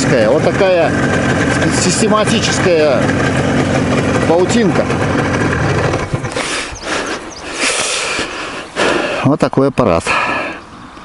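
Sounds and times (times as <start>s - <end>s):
two-stroke motorcycle engine running: 0.0s - 7.6s.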